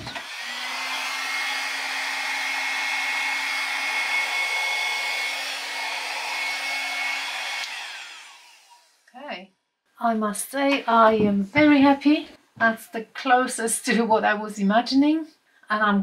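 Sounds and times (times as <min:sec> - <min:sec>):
hair dryer blowing: 0:00.0 - 0:09.0
hair dryer motor winding down: 0:00.0 - 0:09.0.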